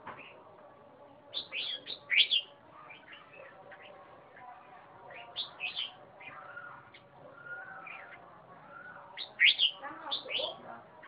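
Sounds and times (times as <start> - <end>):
bird singing: 1.1 - 11.0.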